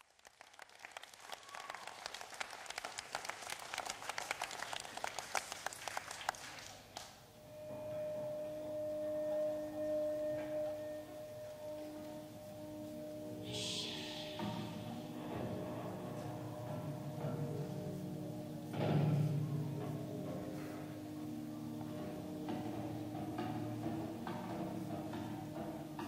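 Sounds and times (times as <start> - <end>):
audience applause: 0.0 - 7.2
low music drone: 7.4 - 26.0.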